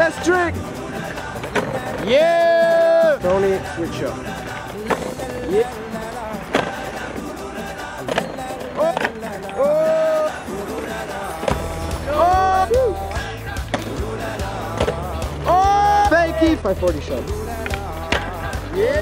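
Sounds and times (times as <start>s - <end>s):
background music: 0.0s - 19.0s
skateboards cracking on concrete: 0.0s - 19.0s
skateboards rolling on paving: 0.0s - 19.0s.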